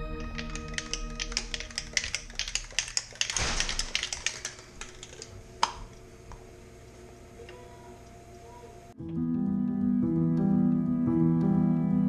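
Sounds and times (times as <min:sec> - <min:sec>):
rapid clicking and rattling: 0:00.2 - 0:05.3.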